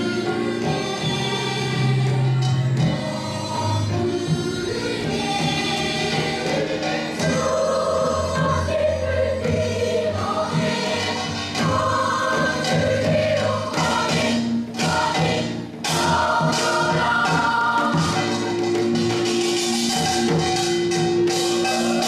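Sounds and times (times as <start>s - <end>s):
adult voices singing: 0.0s - 18.8s
children's choir singing: 0.0s - 19.4s, 21.3s - 22.0s.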